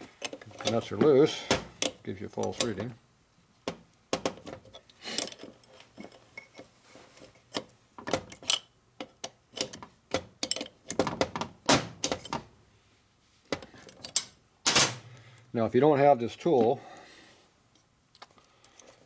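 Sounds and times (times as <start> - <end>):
wrench clinking on metal: 8.3 - 9.8, 10.4 - 11.0.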